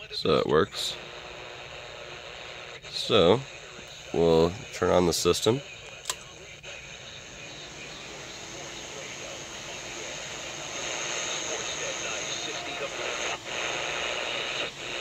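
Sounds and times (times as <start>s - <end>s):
radio static hiss: 0.0s - 15.0s.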